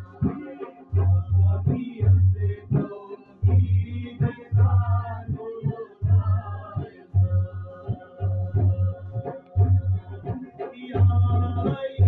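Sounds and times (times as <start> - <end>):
man singing: 0.0 - 12.0
plucked long-necked lute: 7.2 - 12.0.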